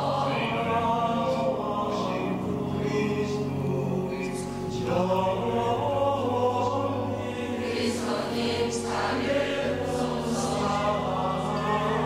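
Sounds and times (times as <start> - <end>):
choir singing a hymn: 0.0 - 12.0
low accompaniment: 0.0 - 12.0.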